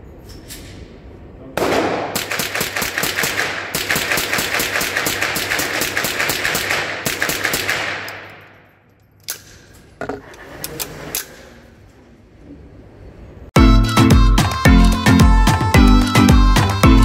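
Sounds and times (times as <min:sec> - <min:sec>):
rapid rifle shots echoing indoors: 0:01.6 - 0:09.8.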